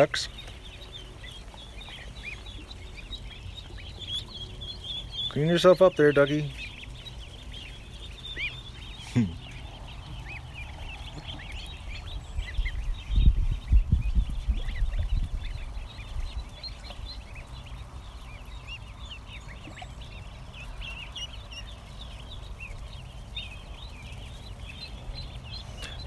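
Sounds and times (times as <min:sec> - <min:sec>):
ducklings and goslings peeping: 0:00.0 - 0:26.0
low rumble: 0:06.6 - 0:19.4.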